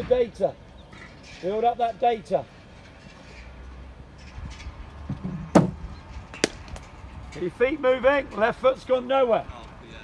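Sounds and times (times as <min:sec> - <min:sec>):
cricket bat striking ball: 0:06.4 - 0:06.8.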